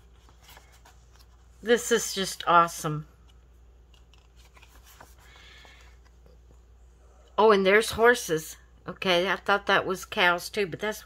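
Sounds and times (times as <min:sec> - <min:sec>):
photo prints shuffled by hand: 0:00.0 - 0:06.7.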